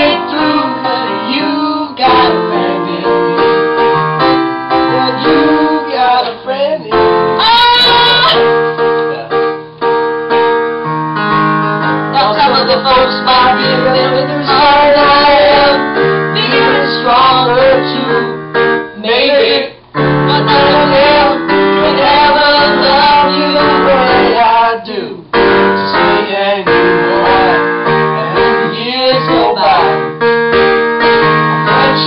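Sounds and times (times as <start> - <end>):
person singing: 0.0 - 3.8, 4.8 - 8.6, 11.6 - 18.4, 19.0 - 25.1, 25.9 - 30.2, 31.7 - 32.0
electronic keyboard chords: 0.0 - 24.7, 25.3 - 32.0.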